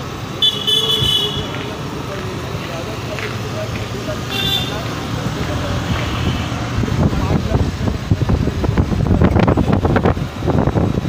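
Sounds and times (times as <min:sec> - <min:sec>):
street traffic noise: 0:00.0 - 0:11.0
vehicle horn: 0:00.4 - 0:01.7, 0:04.2 - 0:04.9, 0:05.9 - 0:06.7.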